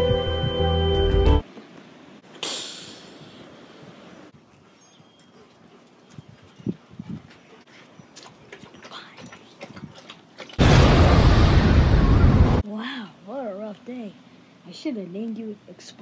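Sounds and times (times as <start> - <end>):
distorted explosion: 10.6 - 12.6.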